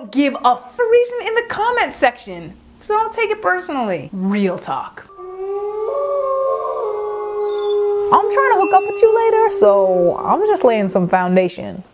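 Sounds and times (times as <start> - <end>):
wolves howling: 5.1 - 10.4.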